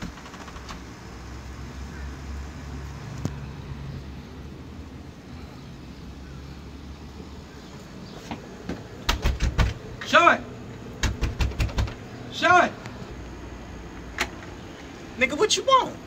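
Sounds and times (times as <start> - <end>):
road traffic rumble: 0.0 - 16.0
knocks on a door: 8.7 - 9.8, 11.0 - 12.0.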